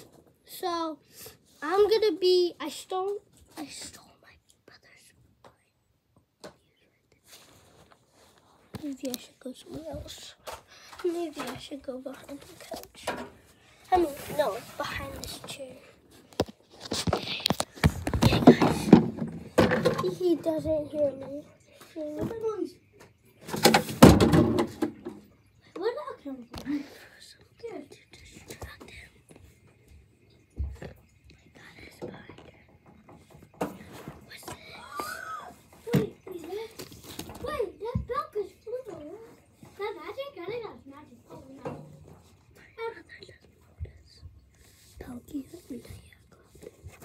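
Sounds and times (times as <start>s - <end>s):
faint whispered speech: 3.5s - 5.8s.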